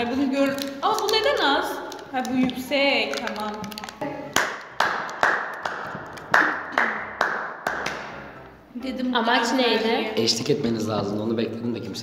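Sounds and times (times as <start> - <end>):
person clapping hands: 4.3 - 8.3.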